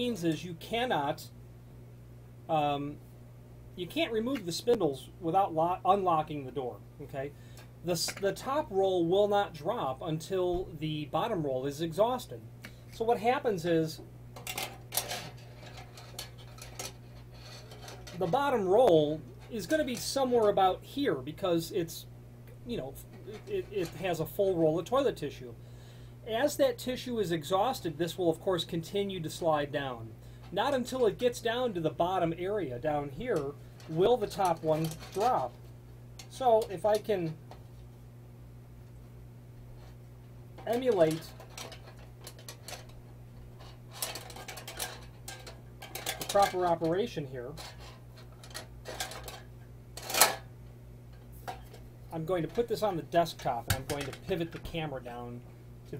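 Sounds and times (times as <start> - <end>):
dispenser spindles clicking and rattling: 14.4 - 21.9, 22.7 - 24.9, 30.4 - 37.5, 40.6 - 50.5, 51.1 - 54.9.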